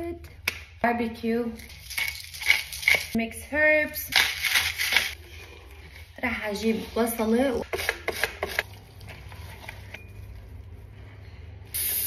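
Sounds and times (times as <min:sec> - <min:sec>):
spice grinder crunching: 0:01.6 - 0:03.2.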